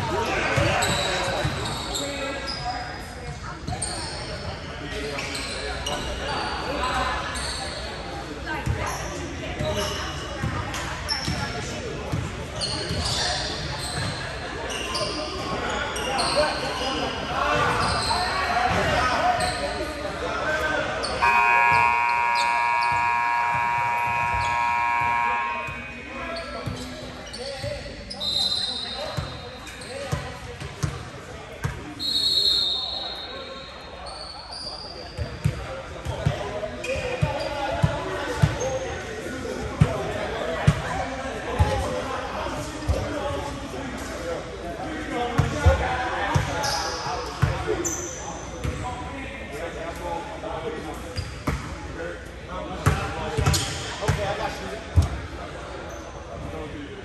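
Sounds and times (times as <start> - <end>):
sneakers squeaking: 0.2 - 39.1, 45.4 - 49.1, 51.1 - 51.8, 52.8 - 56.8
players calling out: 17.7 - 27.5
scoreboard buzzer: 21.2 - 26.1.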